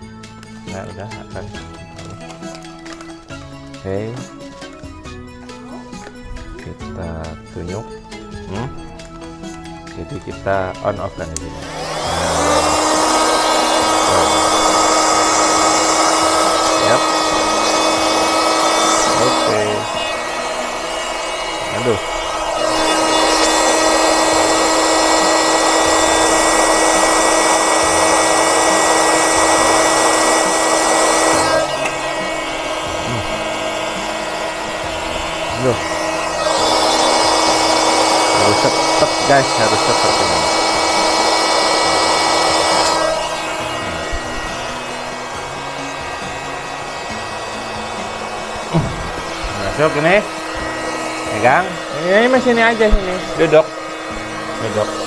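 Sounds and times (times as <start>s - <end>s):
electric air pump whine: 0.0s - 55.0s.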